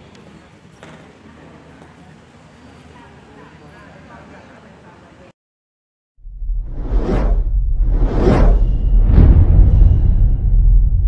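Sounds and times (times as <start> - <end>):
deep steady rumble: 6.2 - 11.0
whooshes: 6.2 - 11.0.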